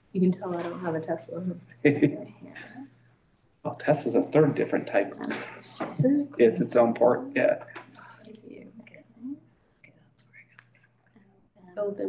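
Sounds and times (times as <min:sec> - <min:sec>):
low electrical hum: 0:00.0 - 0:03.1, 0:03.7 - 0:10.8
murmured talk: 0:00.2 - 0:02.9, 0:03.7 - 0:09.4, 0:11.7 - 0:12.0.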